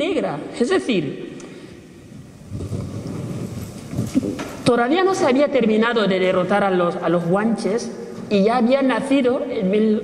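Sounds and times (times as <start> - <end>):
low rumbling on microphone: 2.0 - 4.7.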